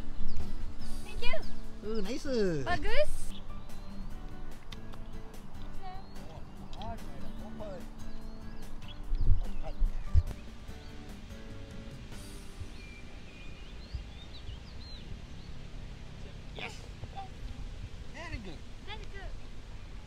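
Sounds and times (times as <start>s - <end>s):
small birds chirping: 0.0s - 20.0s
soft background music: 0.0s - 20.0s
wind thumps on microphone: 8.4s - 13.0s, 17.4s - 18.2s
steady hiss: 10.3s - 13.9s.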